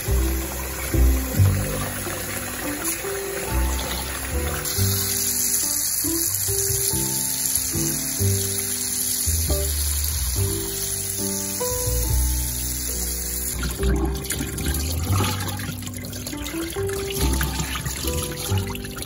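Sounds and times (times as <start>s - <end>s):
background music: 0.0s - 19.0s
tap water running into bowl: 0.0s - 19.0s.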